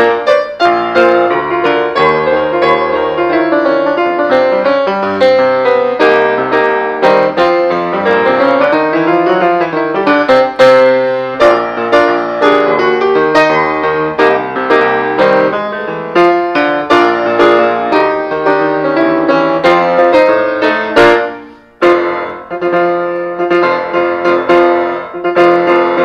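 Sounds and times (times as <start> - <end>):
solo jazz piano: 0.0 - 26.0.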